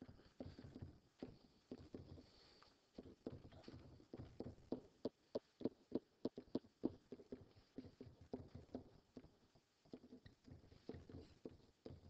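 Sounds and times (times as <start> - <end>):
stylus tapping and scraping on tablet: 0.1 - 12.0.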